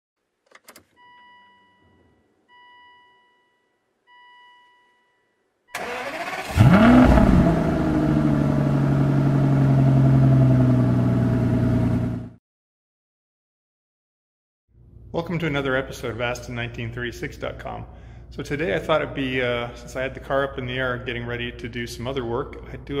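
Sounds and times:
car engine cranking and idling: 5.8 - 12.4.

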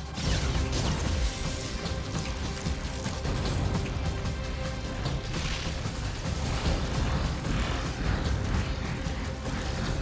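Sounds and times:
orchestral electronic score: 0.0 - 10.0.

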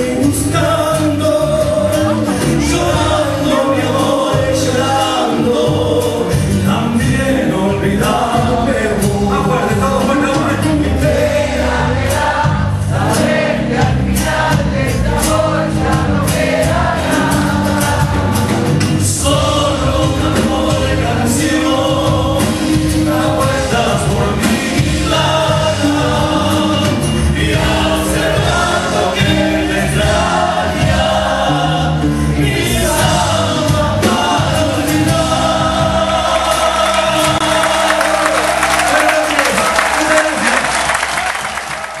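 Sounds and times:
two men singing together: 0.0 - 40.6
band with guitars and drums: 0.0 - 42.0.

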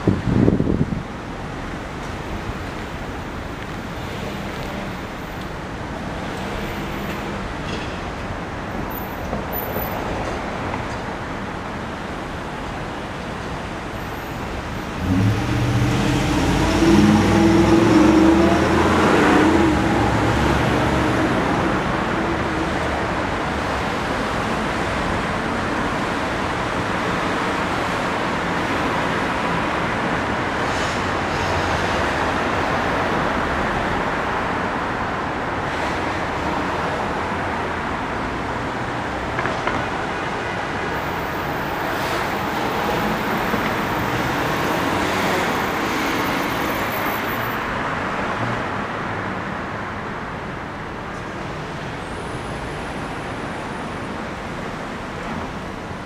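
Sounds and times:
city street traffic: 0.0 - 56.0.

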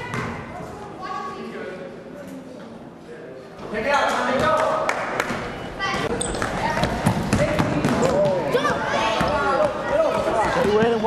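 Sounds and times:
players and spectators voices: 0.0 - 11.0
basketball bouncing on gym floor: 6.8 - 8.4.

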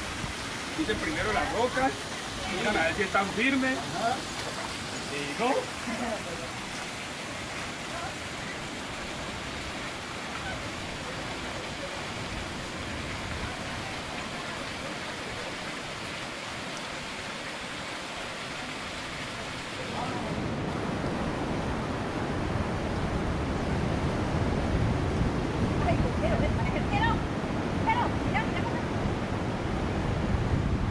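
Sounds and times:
wind on microphone: 0.0 - 3.0, 19.8 - 30.9
waterfall spilling over rocks: 0.0 - 24.2
sea surf: 0.0 - 30.9.

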